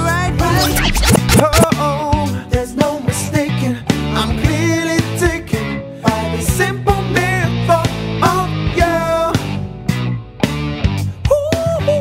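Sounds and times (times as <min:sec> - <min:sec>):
soul band music with singing: 0:00.0 - 0:00.6, 0:01.6 - 0:12.0
sliding scratch-like sounds: 0:00.5 - 0:01.7.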